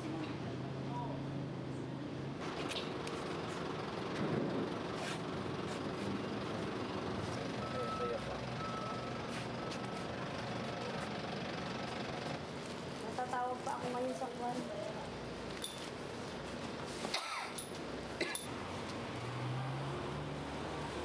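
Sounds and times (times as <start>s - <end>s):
vehicle engine running: 2.4s - 12.5s
faint high beep: 7.6s - 10.1s.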